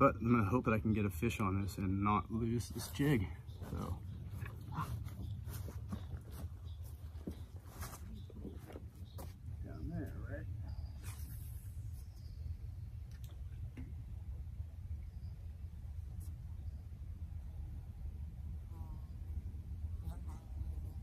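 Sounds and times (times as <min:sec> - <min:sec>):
steady low rumble: 0:00.2 - 0:21.0
footsteps on rocks: 0:03.6 - 0:09.4.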